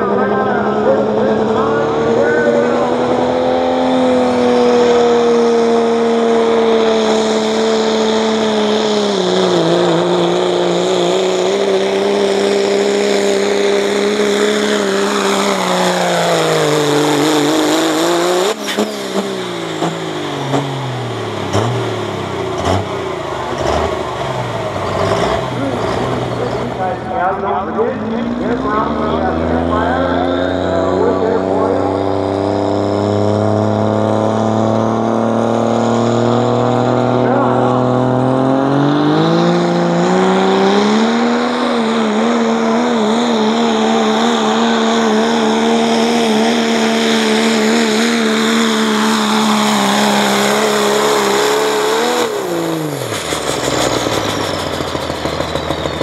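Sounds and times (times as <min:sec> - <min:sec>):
diesel truck engine at full throttle: 0:00.0 - 0:56.0
second diesel truck revving: 0:00.0 - 0:56.0.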